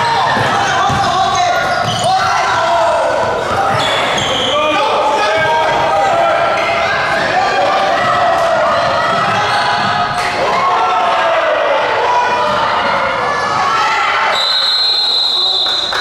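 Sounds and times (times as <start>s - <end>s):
echoing voices: 0.0s - 14.4s
basketball bouncing on wooden court: 0.2s - 2.1s
referee's whistle blast: 14.3s - 16.0s.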